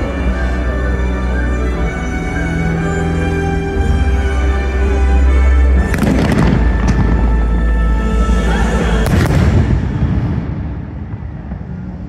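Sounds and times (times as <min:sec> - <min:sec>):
show music: 0:00.0 - 0:12.0
deep rumble: 0:05.7 - 0:12.0
fireworks launching and bursting: 0:05.8 - 0:07.4, 0:09.0 - 0:12.0.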